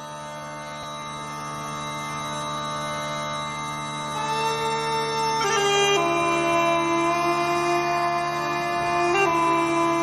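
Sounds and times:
bagpipe drones: 0:00.0 - 0:10.0.

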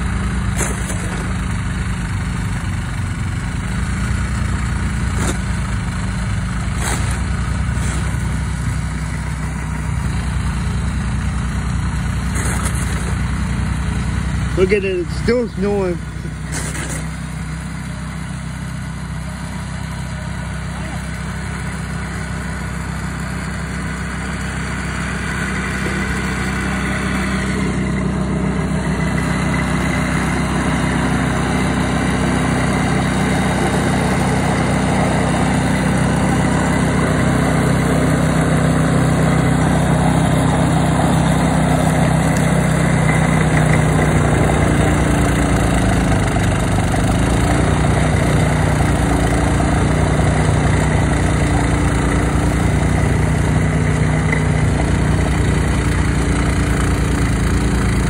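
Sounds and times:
snowblower engine running: 0:00.0 - 0:58.0.

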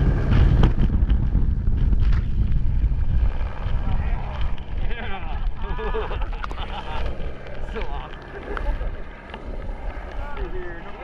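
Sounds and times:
wind rumbling on microphone: 0:00.0 - 0:11.0
helicopter drone: 0:02.3 - 0:11.0.

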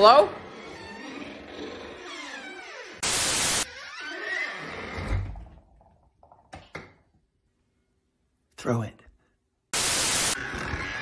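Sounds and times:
burst of static noise: 0:03.0 - 0:03.7, 0:09.7 - 0:10.6.

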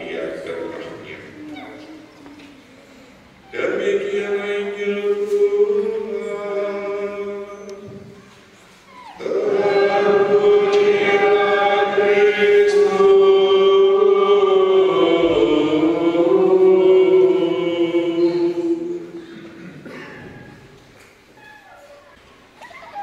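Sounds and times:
priest chanting: 0:03.4 - 0:08.2, 0:09.2 - 0:19.6.

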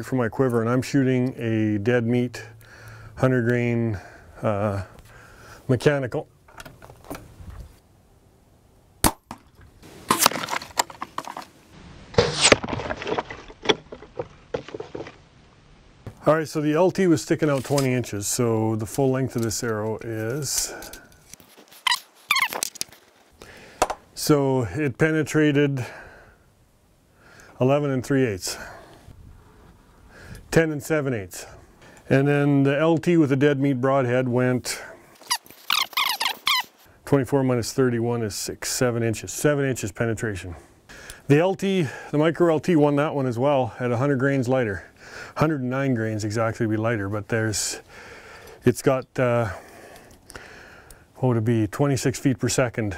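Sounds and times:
arrow release crack: 0:09.0 - 0:10.8, 0:12.1 - 0:12.7
high-pitched squeaks: 0:21.7 - 0:22.7, 0:35.2 - 0:36.8.

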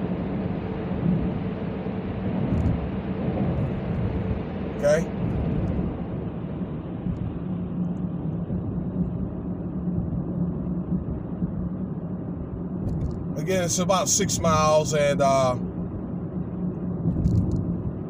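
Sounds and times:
road and engine noise in car: 0:00.0 - 0:18.0.

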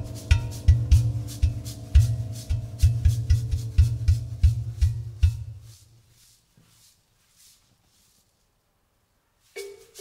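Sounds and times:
bass drum thumps: 0:00.0 - 0:05.8
held instrument notes: 0:00.0 - 0:05.8
scraping shaking percussion: 0:00.0 - 0:08.3, 0:09.4 - 0:10.0.

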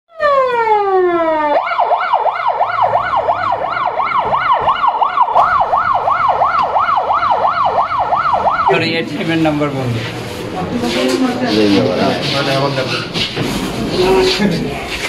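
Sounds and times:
ambulance siren: 0:00.1 - 0:09.2.

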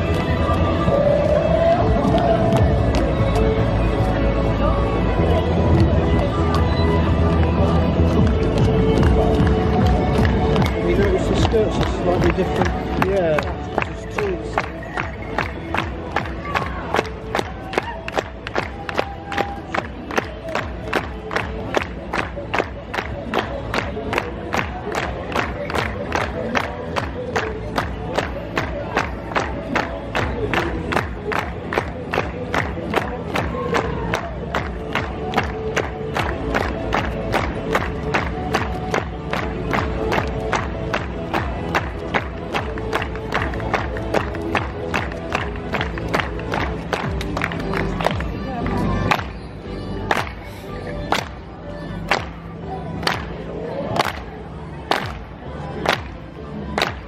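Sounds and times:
crowd voices: 0:00.0 - 0:57.0
lively folk dance music: 0:00.0 - 0:57.0.

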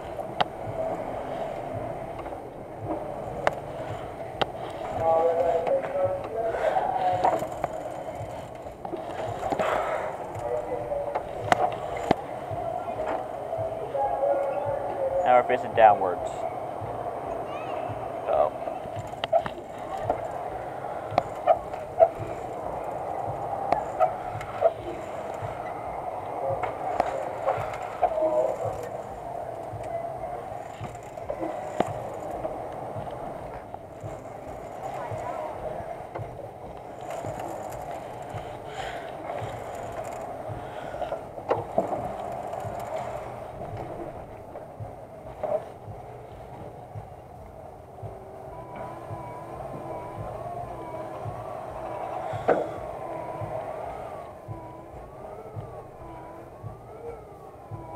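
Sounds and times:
amusement ride mechanical drone: 0:00.0 - 0:57.9
faint wavering tone: 0:48.0 - 0:57.9.

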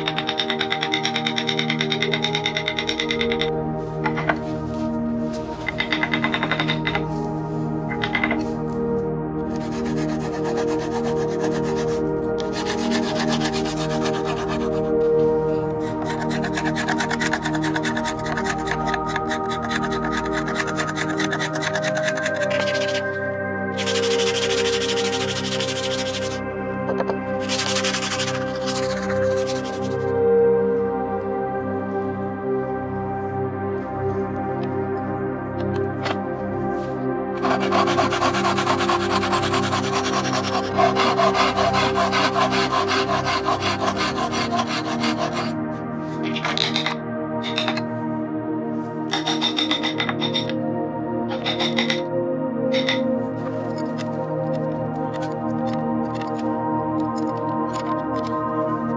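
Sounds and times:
soft ambient music: 0:00.0 - 0:58.9
abrasive tool rubbing wood: 0:09.6 - 0:14.9, 0:15.8 - 0:23.1, 0:23.8 - 0:26.4, 0:27.4 - 0:30.0, 0:37.4 - 0:45.5
hacksaw cutting wood: 0:23.8 - 0:26.4, 0:37.4 - 0:45.5.

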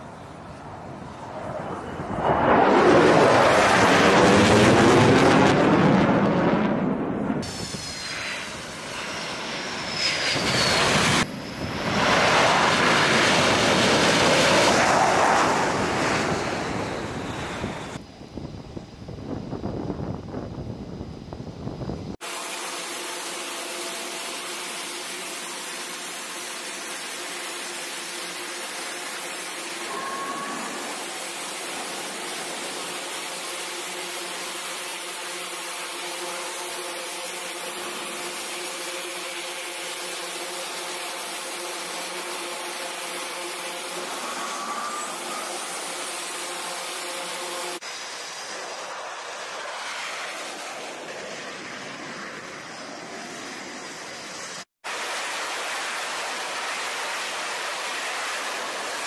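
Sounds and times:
jet engines landing aircraft: 0:00.0 - 0:59.0
jet engine idling hum: 0:23.0 - 0:54.6.

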